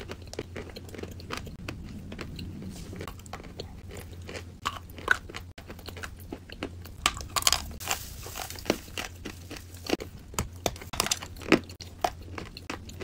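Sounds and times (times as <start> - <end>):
chewing crunchy chalk: 0.0 - 13.0.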